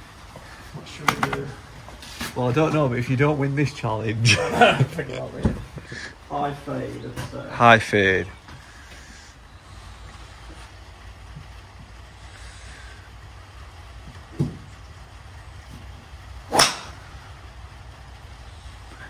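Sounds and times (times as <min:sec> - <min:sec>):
low background rumble: 0:03.1 - 0:19.0
golf club striking ball: 0:16.5 - 0:17.2.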